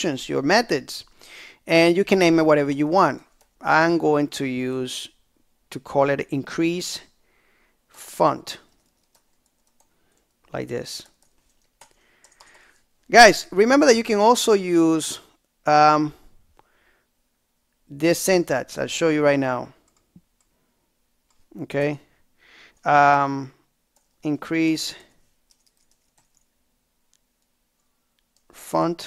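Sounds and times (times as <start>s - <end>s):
faint keyboard typing: 2.1s - 3.6s, 8.5s - 13.1s, 19.8s - 20.6s, 21.2s - 21.6s, 23.9s - 24.3s, 25.0s - 28.6s.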